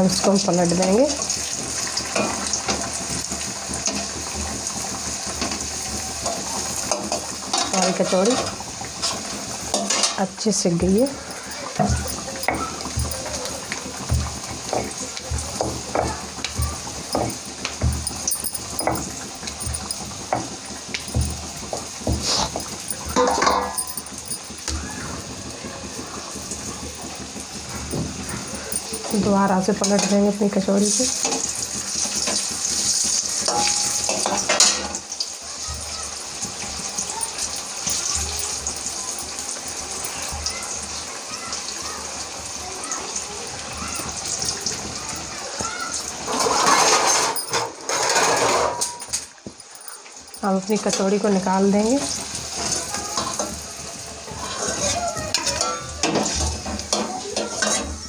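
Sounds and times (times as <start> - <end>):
food sizzling in hot oil: 0.0 - 58.0
kitchen utensils knocking: 5.3 - 35.0, 35.6 - 41.5, 43.6 - 58.0.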